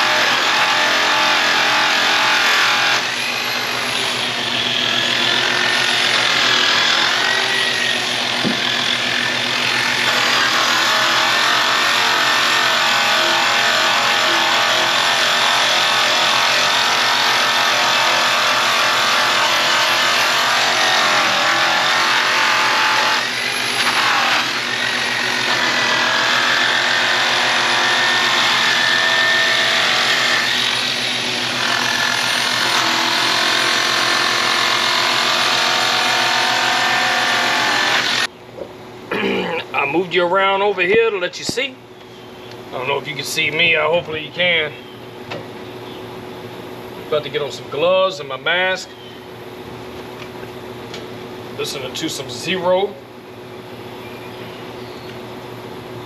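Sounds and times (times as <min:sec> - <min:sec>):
electric polisher running: 0:15.6 - 0:38.3.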